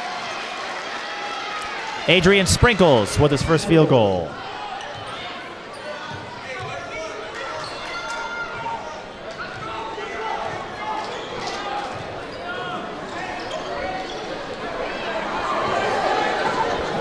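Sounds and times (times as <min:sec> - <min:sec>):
voices of players and crowd: 0:00.0 - 0:17.0.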